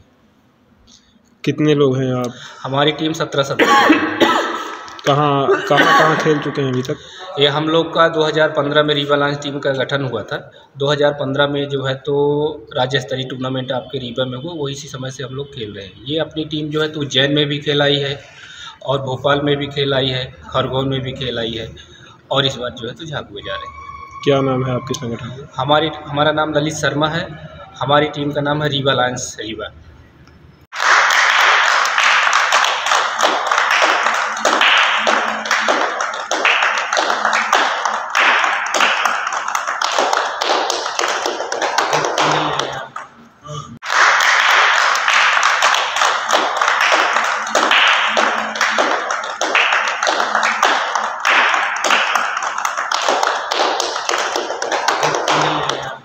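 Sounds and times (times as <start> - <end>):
people clapping: 3.6 - 9.0, 30.7 - 56.0.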